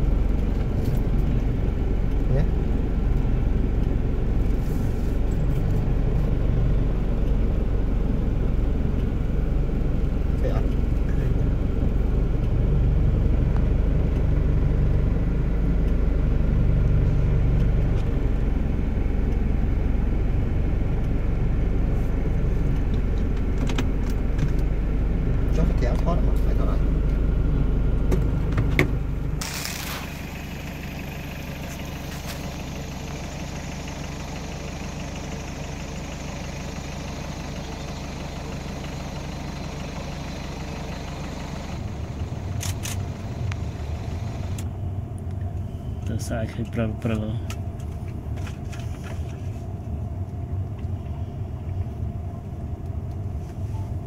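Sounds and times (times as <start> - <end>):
engine idling hum: 0.0 - 54.0
road noise: 0.0 - 54.0
vehicle engine rumble: 0.0 - 54.0.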